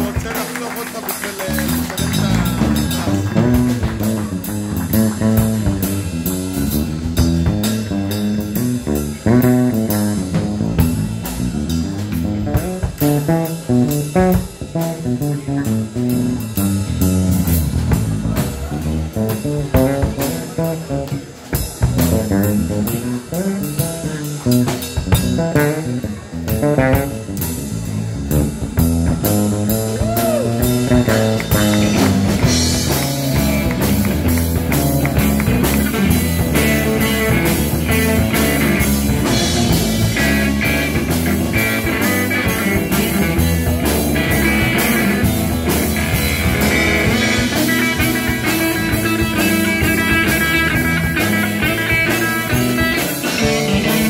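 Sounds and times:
drum kit: 0.0s - 54.0s
electric bass: 0.0s - 54.0s
electric guitar bent notes: 1.6s - 54.0s.

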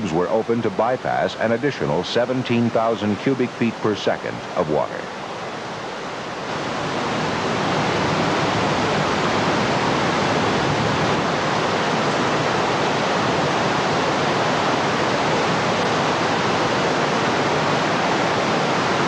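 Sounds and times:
heavy rushing water: 0.0s - 19.0s.

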